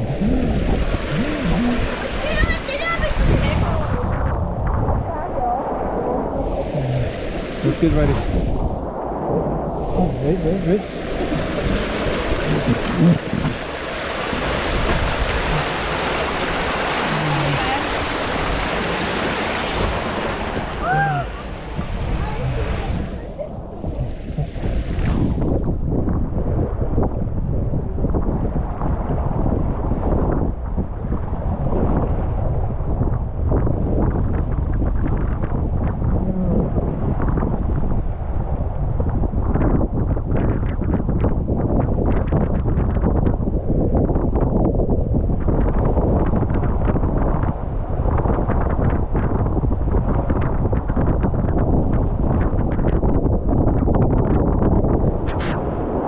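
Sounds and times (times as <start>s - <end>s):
water rushing and sloshing: 0.0s - 27.1s, 45.2s - 56.0s
wind buffeting microphone: 0.0s - 56.0s.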